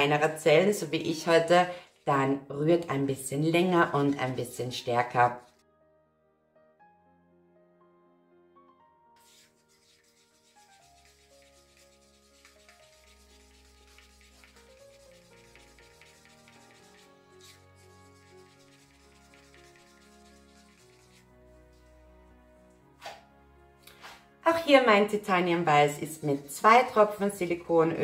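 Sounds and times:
soft background music: 0:00.0 - 0:28.0
stick scraping inside paper cup: 0:00.6 - 0:02.3, 0:04.2 - 0:05.6, 0:09.2 - 0:22.0
brief knock: 0:23.0 - 0:23.2.

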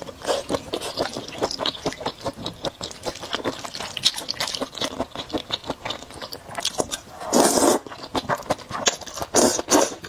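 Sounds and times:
slurping noodles: 0:06.8 - 0:10.0.

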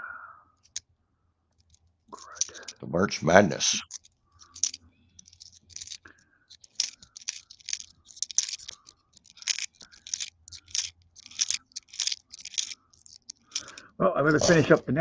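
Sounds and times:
coins and paper wrapper crinkling: 0:01.6 - 0:02.8, 0:03.5 - 0:14.8.

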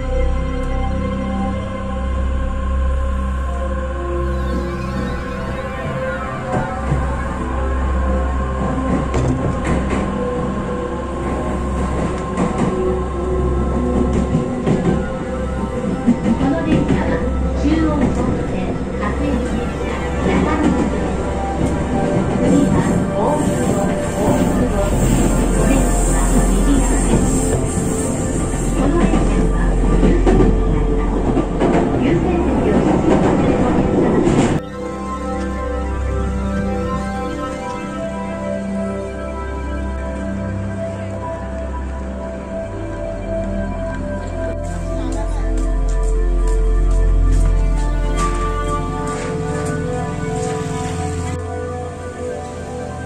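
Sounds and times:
train rumbling: 0:00.0 - 0:34.7, 0:35.8 - 0:53.0
background music: 0:00.0 - 0:53.0.

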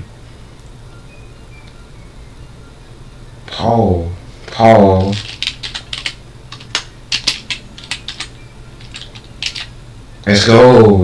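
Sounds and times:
computer keyboard typing: 0:04.5 - 0:09.8.

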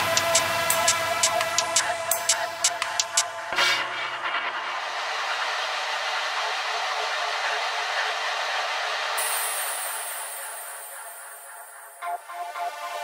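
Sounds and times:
filtered noise wash: 0:00.0 - 0:13.0
thin high shimmer: 0:09.2 - 0:12.8.

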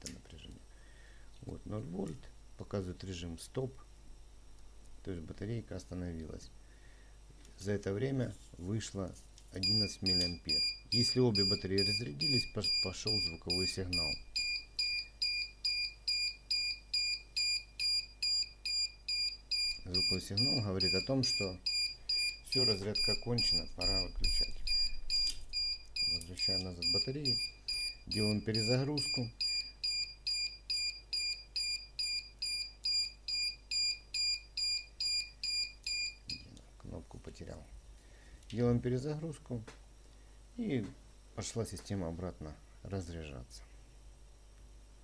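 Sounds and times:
high-pitched speaker beeps: 0:09.6 - 0:36.4.

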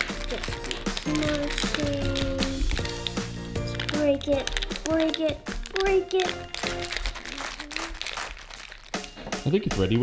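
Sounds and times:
plastic pouch crinkling: 0:00.0 - 0:09.3.

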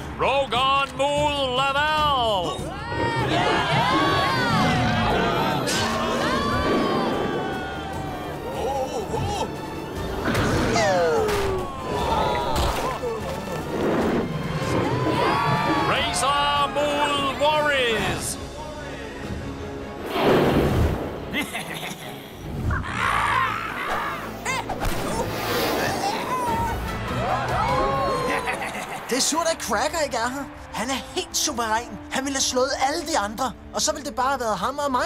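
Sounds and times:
cartoon background music: 0:00.1 - 0:35.0.

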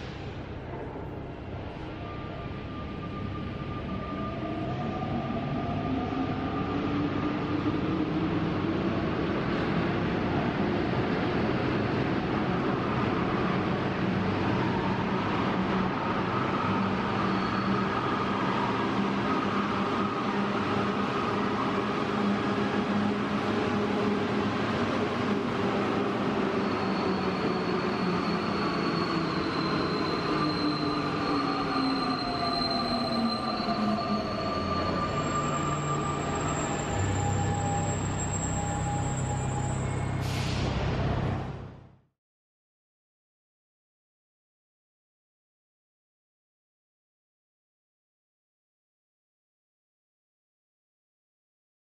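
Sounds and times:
metro train running: 0:00.0 - 0:41.9
faint high squeal: 0:16.5 - 0:18.7, 0:26.4 - 0:40.8.

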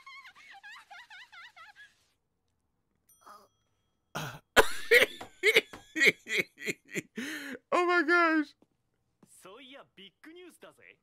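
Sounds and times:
man laughing hard: 0:04.6 - 0:07.5.

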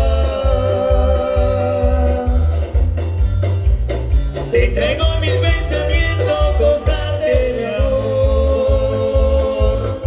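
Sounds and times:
marimba band dance music: 0:00.0 - 0:10.0.

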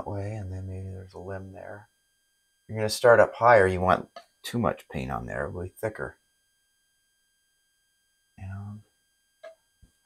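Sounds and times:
person speaking: 0:00.0 - 0:01.8
faint high-pitched tone: 0:00.0 - 0:10.0.

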